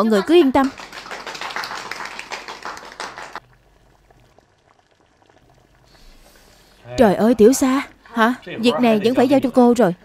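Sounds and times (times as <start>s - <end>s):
people clapping: 0.0s - 3.4s.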